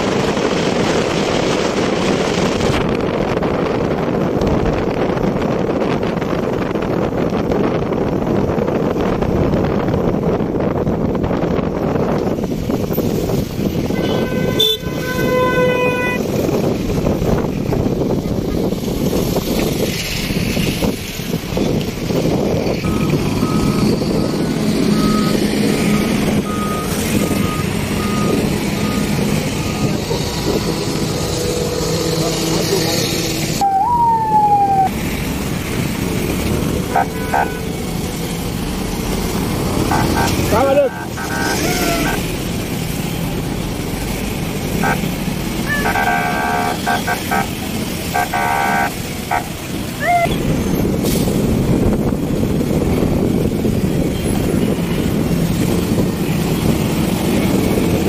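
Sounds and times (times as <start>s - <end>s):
traffic engines and tyres rumbling: 0.0s - 58.0s.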